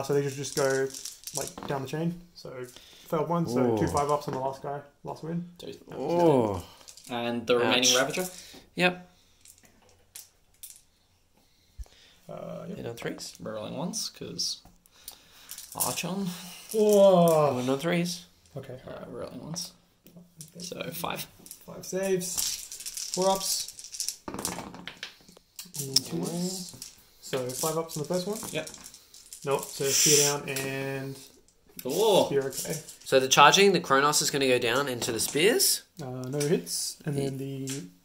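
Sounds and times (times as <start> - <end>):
plastic game pieces clicking: 0.2 - 1.6, 22.3 - 30.3
short wordless vocal sound: 5.9 - 6.8.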